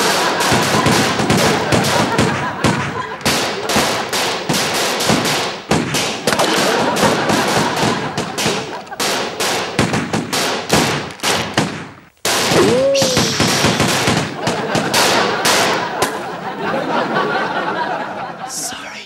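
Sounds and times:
pistol gunfire volley: 0.0s - 16.4s.

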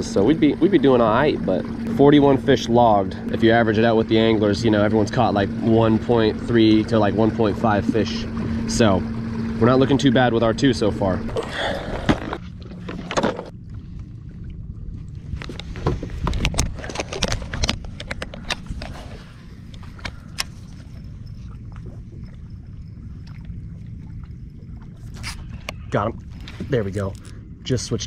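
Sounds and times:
steady low rumble: 0.0s - 28.0s
plastic tackle box rattling: 11.9s - 13.5s, 15.5s - 19.2s.

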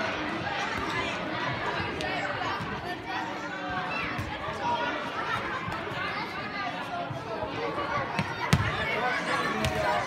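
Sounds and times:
hubbub of overlapping voices: 0.0s - 10.0s.

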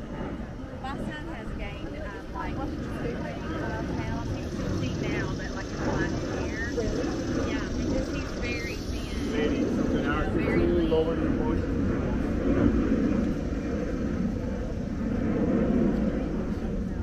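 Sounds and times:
jet airliner rumble overhead: 0.0s - 17.0s
people's voices: 0.4s - 12.8s.

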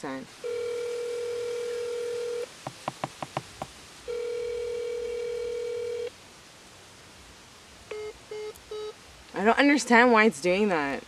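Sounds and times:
phone call buzzing tone: 0.4s - 2.5s, 4.1s - 6.1s, 7.9s - 9.0s.

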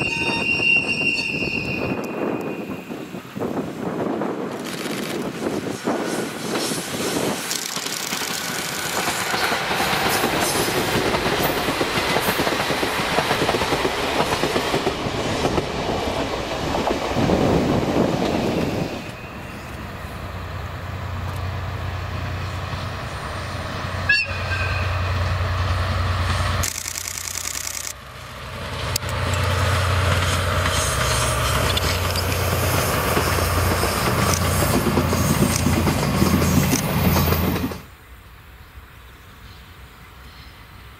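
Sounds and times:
train wheels rolling: 0.0s - 38.0s
diesel locomotive engines rumbling: 0.0s - 40.9s.

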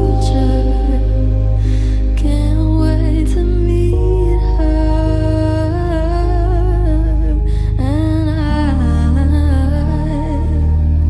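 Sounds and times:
sustained keyboard chords: 0.0s - 11.0s
woman singing wordless melody: 0.0s - 11.0s.

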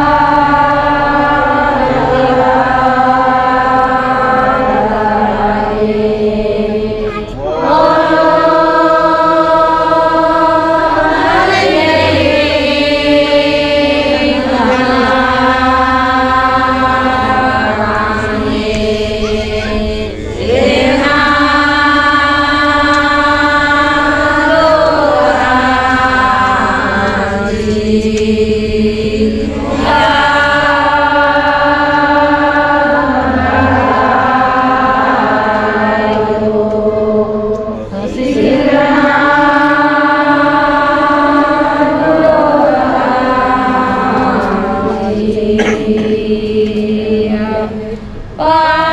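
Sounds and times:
women chanting in unison: 0.0s - 48.9s.

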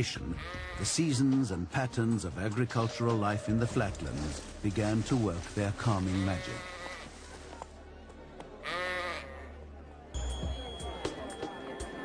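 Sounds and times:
sheep bleating: 0.3s - 0.9s, 6.0s - 7.1s, 8.6s - 9.5s.

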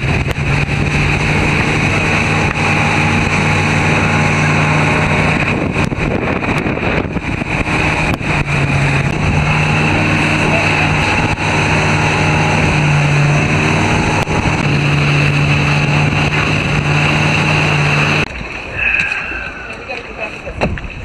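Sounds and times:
motorboat engine running: 0.0s - 21.0s
water rushing: 0.0s - 21.0s
wind buffeting microphone: 0.0s - 21.0s.

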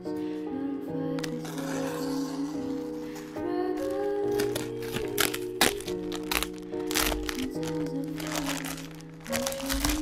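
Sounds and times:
background music with held tones: 0.0s - 10.0s
plastic mailer bag crinkling: 3.1s - 10.0s.

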